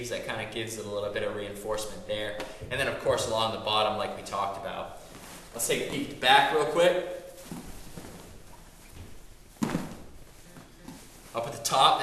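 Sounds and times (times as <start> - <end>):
fabric rustling: 3.6 - 12.0
thump on mat: 9.6 - 10.1.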